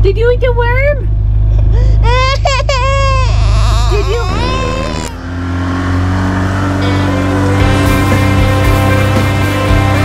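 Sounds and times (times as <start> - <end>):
low steady rumble: 0.0 - 6.0
toddler crying: 1.8 - 5.3
music with held tones: 6.8 - 10.0.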